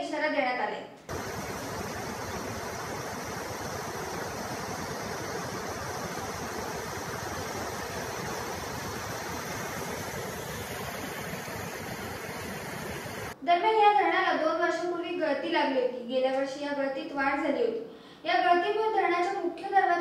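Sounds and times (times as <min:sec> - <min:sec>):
water rushing: 0:01.1 - 0:13.4.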